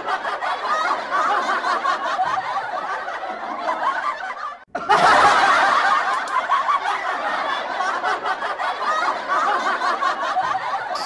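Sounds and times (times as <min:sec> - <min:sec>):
people laughing and snickering: 0:00.0 - 0:11.0.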